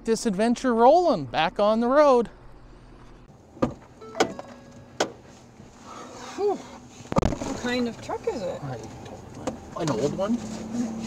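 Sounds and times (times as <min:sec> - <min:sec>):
sharp clunks inside truck: 0:03.6 - 0:05.2.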